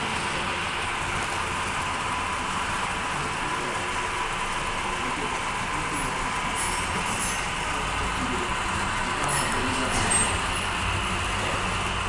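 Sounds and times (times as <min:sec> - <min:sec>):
model train rolling on track: 0:00.0 - 0:12.0.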